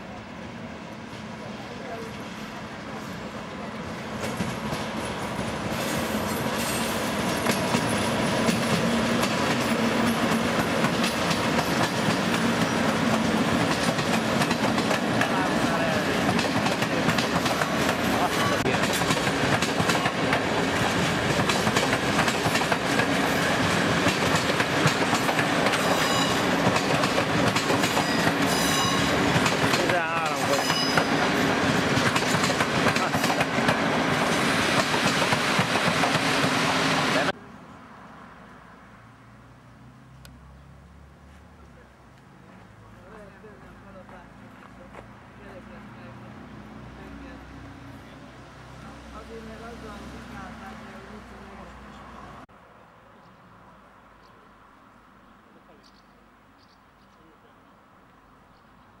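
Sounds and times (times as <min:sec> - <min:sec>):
train wheels clattering over rail joints: 0:04.2 - 0:15.4, 0:16.2 - 0:36.5.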